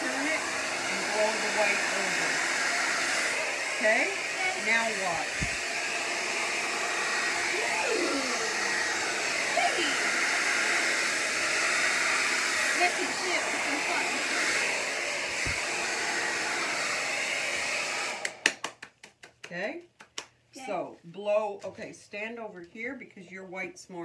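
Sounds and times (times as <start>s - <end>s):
hair dryer running: 0.0s - 18.6s.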